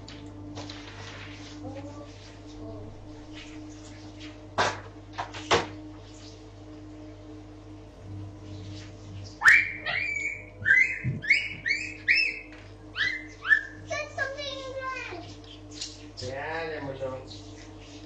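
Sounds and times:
steady electrical hum: 0:00.0 - 0:18.0.

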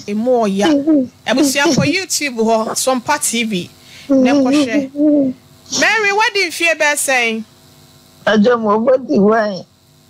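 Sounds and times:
person speaking: 0:00.2 - 0:06.5
person moaning: 0:04.1 - 0:05.4.

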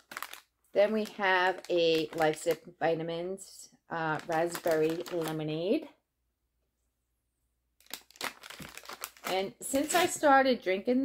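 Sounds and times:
plastic packaging crinkling: 0:00.0 - 0:02.7, 0:04.0 - 0:05.5, 0:07.8 - 0:10.2.

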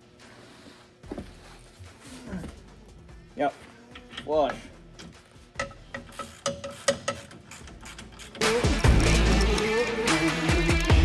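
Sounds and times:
ratchet metallic clicks: 0:05.0 - 0:09.9.

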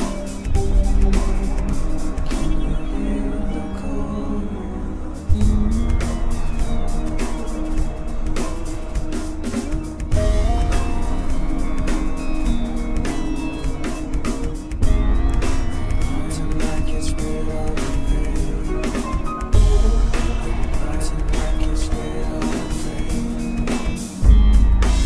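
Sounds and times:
steady drum beat: 0:00.0 - 0:03.3, 0:05.2 - 0:25.0
bass: 0:00.0 - 0:25.0.

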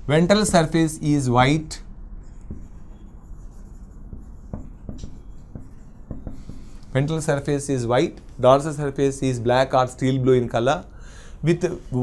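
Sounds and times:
marker scratching on whiteboard: 0:02.2 - 0:08.8.

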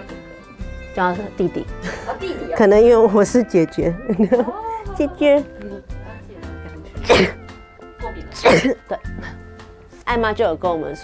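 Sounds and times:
background music: 0:00.0 - 0:11.0
woman sneezing: 0:07.0 - 0:07.4, 0:08.4 - 0:09.4.

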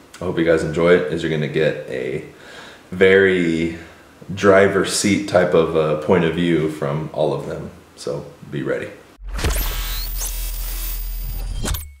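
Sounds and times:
sharp glitch hit: 0:09.2 - 0:12.0.

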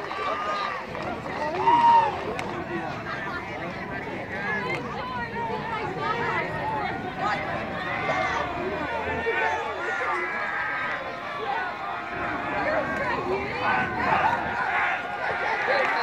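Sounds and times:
crowd chattering and calling out: 0:00.0 - 0:16.0.

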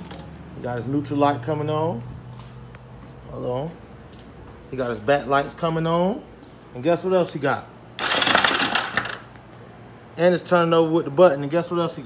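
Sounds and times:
electric starter cranking engine: 0:08.0 - 0:09.3.

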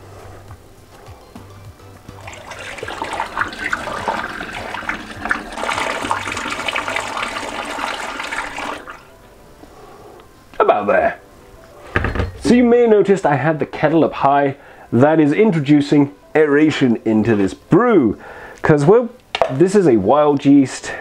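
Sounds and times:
water pouring splashing and gurgling: 0:02.1 - 0:09.1.

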